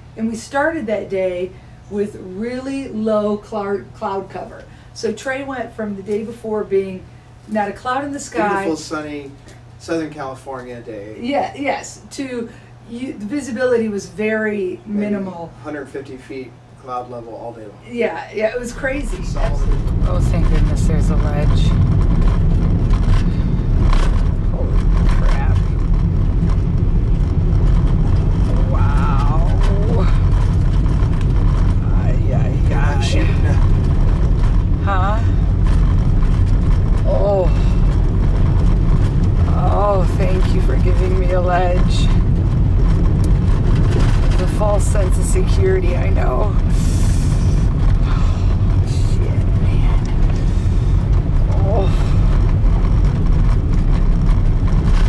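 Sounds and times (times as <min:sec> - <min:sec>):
engine and tyres rumbling on gravel: 0:18.6 - 0:55.0.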